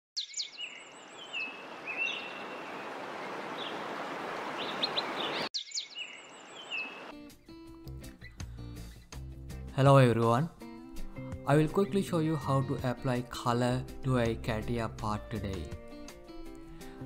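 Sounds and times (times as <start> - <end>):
birds chirping: 0.2 - 7.2.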